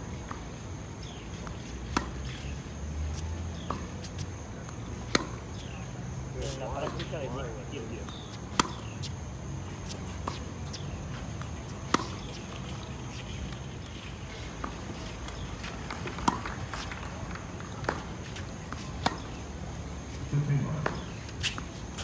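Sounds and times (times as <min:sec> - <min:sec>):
tennis balls bouncing: 0:00.1 - 0:22.0
rackets hitting tennis balls: 0:00.2 - 0:22.0.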